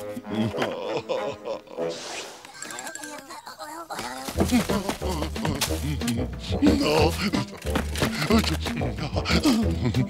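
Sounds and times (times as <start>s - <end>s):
high cartoon chattering: 2.5s - 4.4s.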